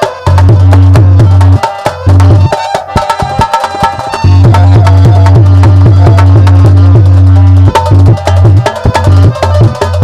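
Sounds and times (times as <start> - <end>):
drum strokes: 0.0 - 10.0.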